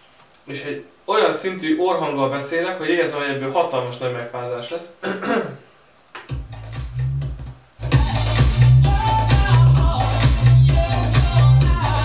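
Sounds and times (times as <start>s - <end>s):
bass-heavy house music: 6.3s - 12.0s.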